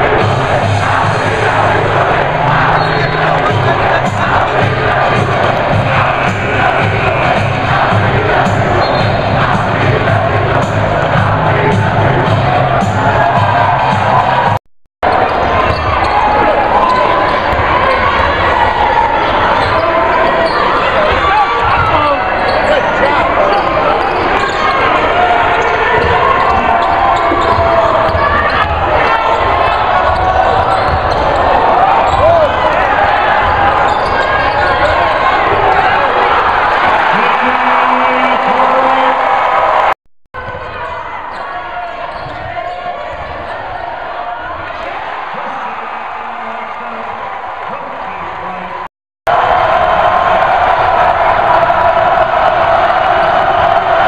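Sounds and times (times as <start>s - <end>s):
crowd cheering: 0.0s - 54.0s
crowd noise and voices: 0.0s - 54.0s.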